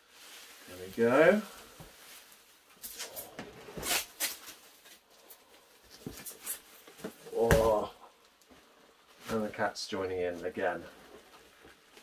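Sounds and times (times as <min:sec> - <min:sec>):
plastic and bubble wrap crinkling: 0:00.0 - 0:12.0.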